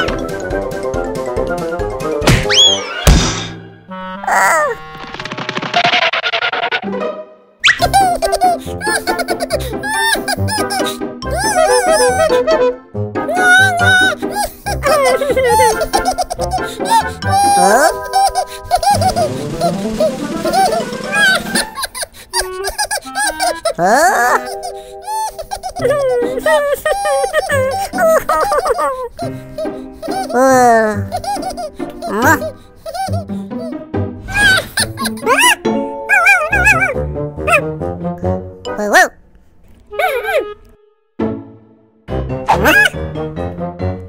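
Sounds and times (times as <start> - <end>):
children's cartoon music: 0.0 - 39.2, 39.9 - 44.0
loud thunk: 2.2 - 3.6
whistling pitch glide: 2.5 - 3.1, 7.6 - 7.9
rattling noise: 4.8 - 6.8, 18.1 - 22.0
cartoon character laughing: 7.6 - 37.6, 39.9 - 40.6, 42.5 - 43.0.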